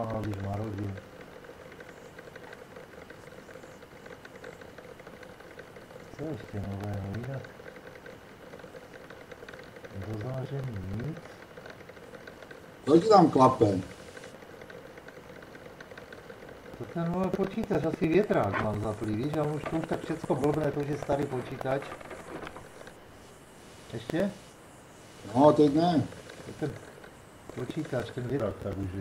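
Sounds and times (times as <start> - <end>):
light clacking: 0.0 - 23.1, 25.3 - 29.0
computer fan clattering: 0.0 - 29.0.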